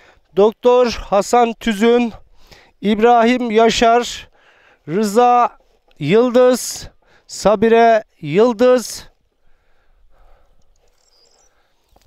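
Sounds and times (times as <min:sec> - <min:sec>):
faint outdoor ambience: 0:00.0 - 0:12.0
faint high chirps: 0:10.8 - 0:11.7.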